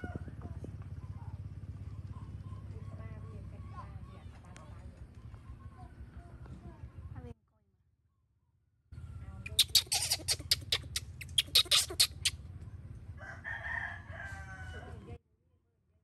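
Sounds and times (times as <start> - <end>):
baby monkey screaming: 9.4 - 12.4
wavering monkey call: 9.4 - 12.4.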